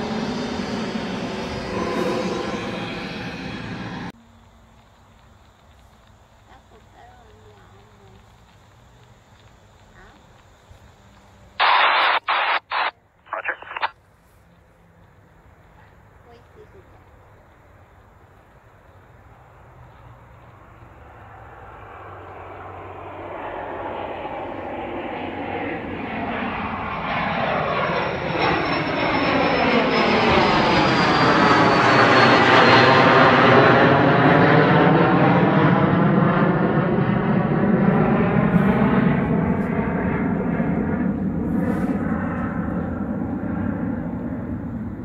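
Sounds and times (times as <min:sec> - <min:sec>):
jet engines whining passing by: 0:00.0 - 0:13.9, 0:14.8 - 0:45.0.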